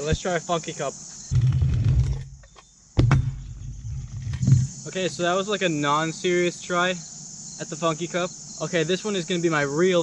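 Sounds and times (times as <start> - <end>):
scooter landing clack: 1.4 - 4.6.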